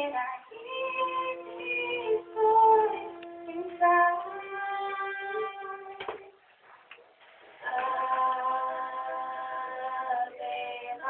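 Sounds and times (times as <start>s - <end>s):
women singing together: 0.0s - 6.4s, 7.6s - 11.0s.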